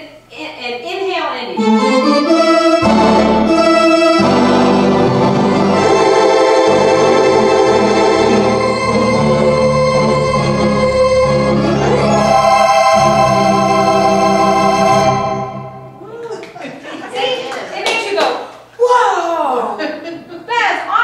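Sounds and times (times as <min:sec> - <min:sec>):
organ playing chords: 0:01.6 - 0:16.2
deep pedal bass: 0:02.8 - 0:14.5.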